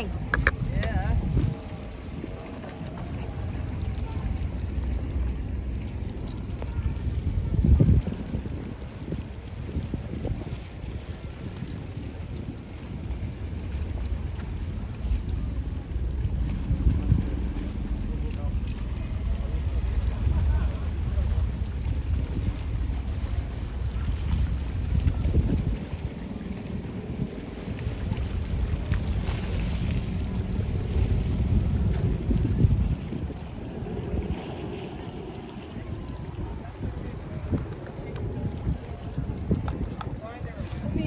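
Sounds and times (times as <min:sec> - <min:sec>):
boat running noise: 0:00.0 - 0:41.0
water: 0:00.0 - 0:41.0
wind buffeting microphone: 0:00.0 - 0:41.0.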